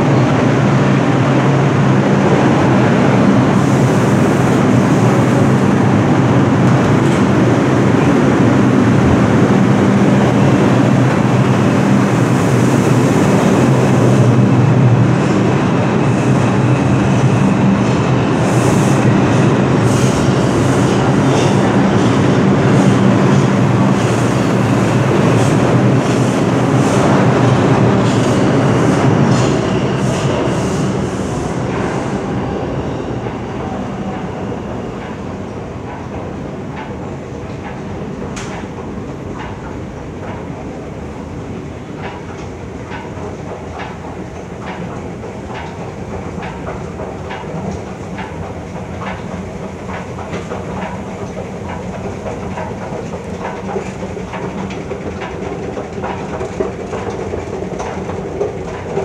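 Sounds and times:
subway train rumbling in tunnel: 0.0 - 59.0
wheels clicking over rail joints: 41.8 - 59.0.

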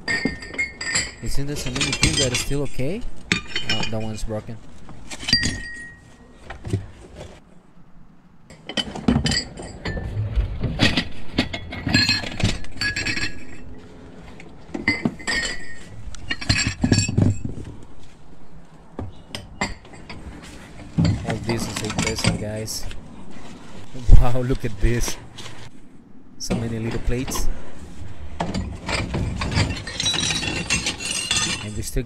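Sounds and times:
porcelain dishes clinking: 14.8 - 17.4.

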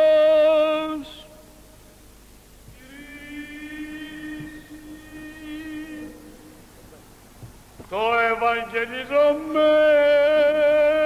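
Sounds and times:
man chanting: 0.0 - 1.4, 2.8 - 6.5, 7.8 - 11.0.

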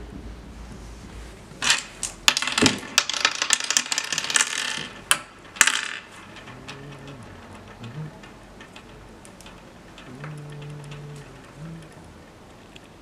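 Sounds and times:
seeds clattering in wooden board: 1.6 - 13.0.

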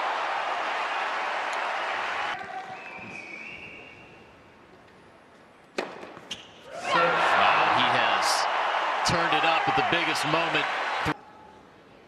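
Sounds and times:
crowd cheering and shouting: 0.0 - 2.4, 6.7 - 11.2.

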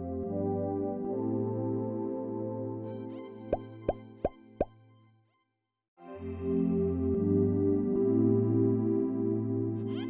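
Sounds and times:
pop sound effects: 3.5 - 4.8
soft intro music: 6.0 - 9.9.

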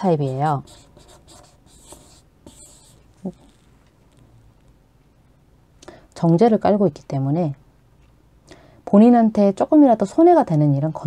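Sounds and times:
chalk scratching on blackboard: 0.0 - 3.7.

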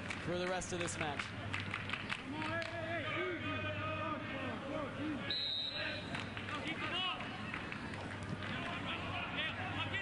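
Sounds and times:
crowd and player voices: 0.2 - 10.0
referee's whistle blast: 5.3 - 6.1.

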